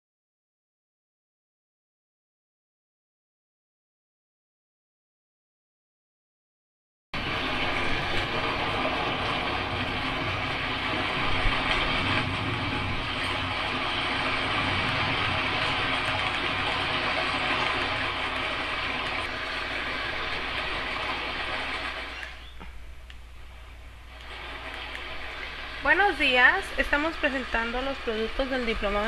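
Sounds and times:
loud steady rushing noise: 0:07.2 - 0:29.0.

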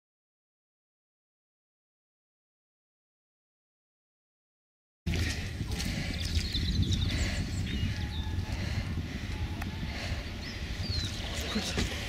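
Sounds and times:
small birds chirping: 0:05.1 - 0:12.0
wind rumble on microphone: 0:05.1 - 0:12.0.

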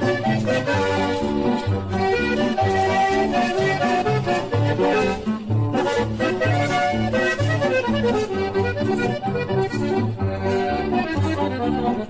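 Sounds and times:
button accordion melody: 0:00.0 - 0:12.0.

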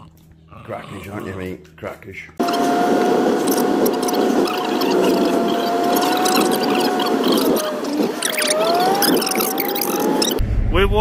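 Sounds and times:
steady whine: 0:01.9 - 0:11.0
road noise inside vehicle cabin: 0:02.4 - 0:10.4.

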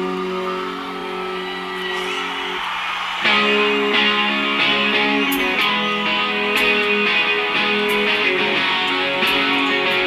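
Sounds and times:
electric guitar chord ringing: 0:03.2 - 0:10.0.

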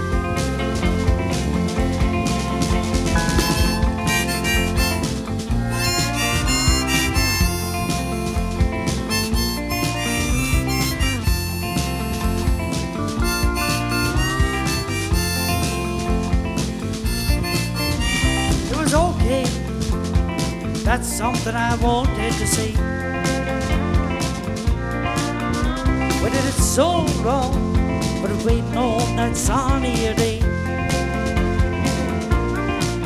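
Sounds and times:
guitar backing: 0:00.0 - 0:33.0
harmonica playing lead line: 0:01.5 - 0:19.5.

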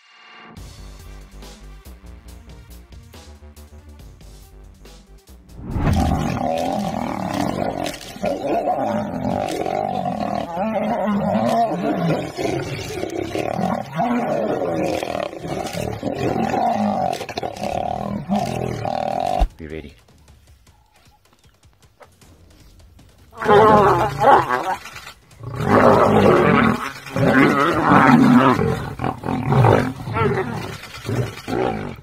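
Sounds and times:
lions snarling and roaring: 0:05.6 - 0:19.6, 0:23.3 - 0:32.0.

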